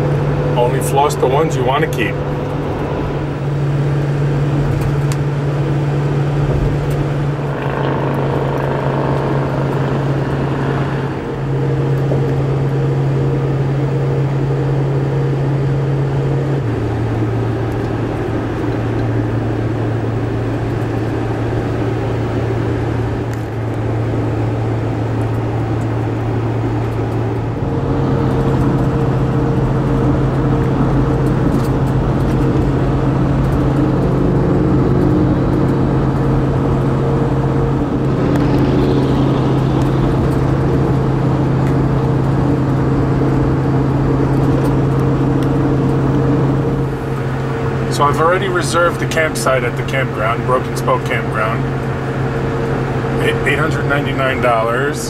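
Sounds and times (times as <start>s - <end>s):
road noise: 0.0s - 55.0s
vehicle engine drone: 0.0s - 55.0s.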